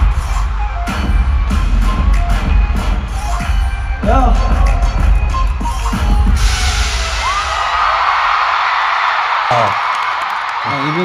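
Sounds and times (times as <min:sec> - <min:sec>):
crowd applauding and cheering: 0:00.0 - 0:04.0, 0:04.6 - 0:11.0
bass-heavy pop music: 0:00.0 - 0:07.4.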